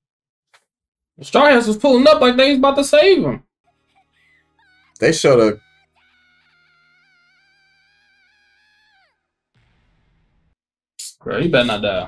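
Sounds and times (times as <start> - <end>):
girl's high wailing cry: 4.4 - 9.1.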